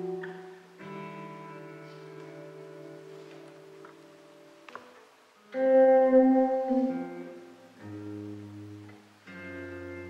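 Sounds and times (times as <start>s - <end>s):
electric guitar: 0.0s - 10.0s.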